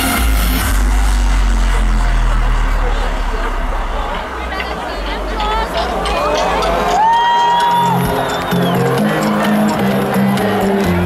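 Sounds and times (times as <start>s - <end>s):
deep bass tone: 0.0s - 6.9s
crowd noise: 0.0s - 11.0s
electronic dance music: 0.0s - 11.0s.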